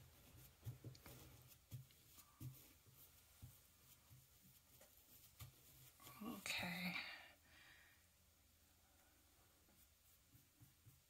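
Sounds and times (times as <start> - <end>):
woman whispering: 6.0 - 7.4.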